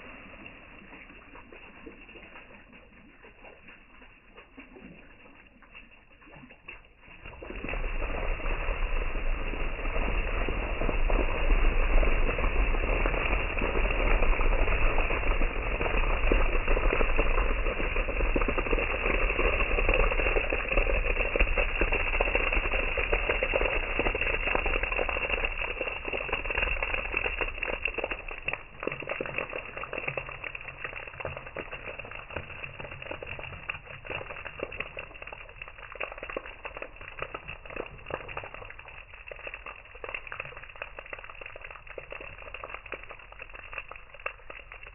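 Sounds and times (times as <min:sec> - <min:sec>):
liquid dripping: 0:00.0 - 0:44.9
liquid pouring and splashing: 0:00.0 - 0:44.9.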